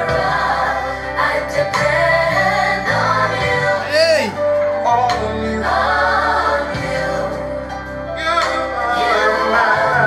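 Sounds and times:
voices singing with choir: 0.0 - 10.0
band playing: 3.8 - 4.6.

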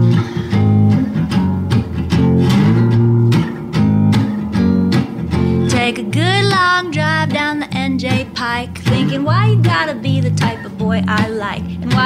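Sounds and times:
guitar strumming: 0.0 - 12.0.

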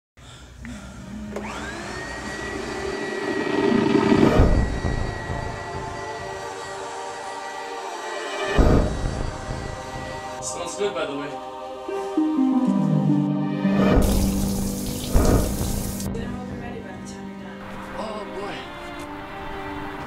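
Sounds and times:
high gliding tone: 1.6 - 6.7
dark drone: 2.1 - 10.5
loud swells: 2.3 - 6.9.

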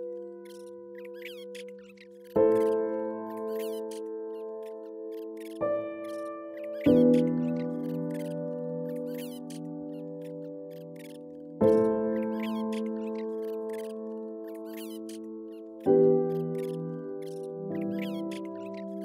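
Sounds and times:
slow piano chords: 0.0 - 19.0
high bird chirps: 0.4 - 19.0.

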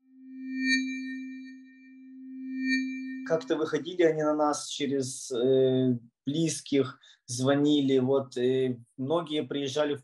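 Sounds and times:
low synthesized tone: 0.0 - 4.6
bell-like shimmer: 0.4 - 4.3.

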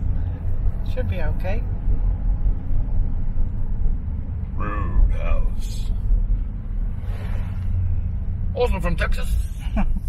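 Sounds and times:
car cabin engine and road rumble: 0.0 - 10.0.

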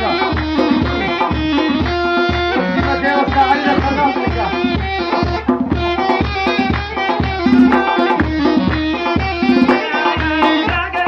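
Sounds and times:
deep drum beating: 0.0 - 11.0.

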